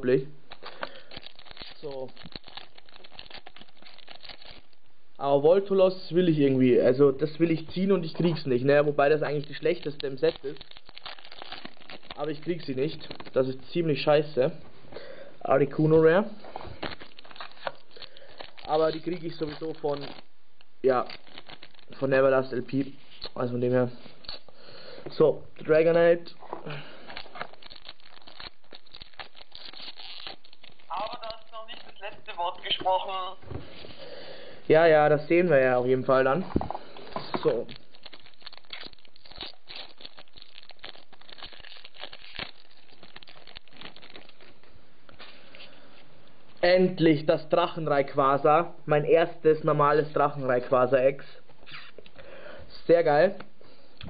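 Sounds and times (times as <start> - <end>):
foil wrapper crinkling: 0.4 - 4.9, 7.2 - 14.4, 16.0 - 24.9, 25.8 - 34.2, 35.4 - 45.9.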